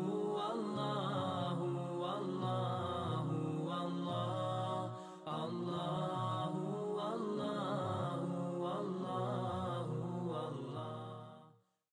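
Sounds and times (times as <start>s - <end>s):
chanted vocal music: 0.0s - 11.6s.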